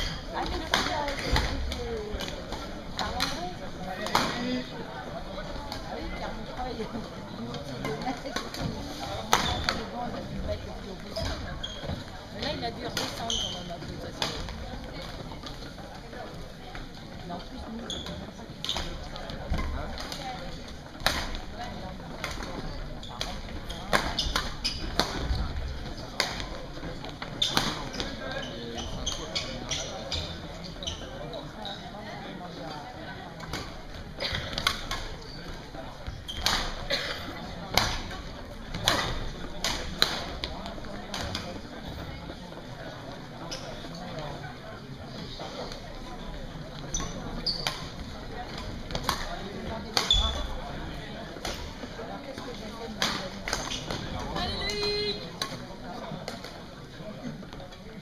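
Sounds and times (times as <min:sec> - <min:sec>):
chatter in sports hall: 0:00.0 - 0:58.0
racket hitting shuttlecock: 0:36.4 - 0:36.7, 0:48.9 - 0:49.3.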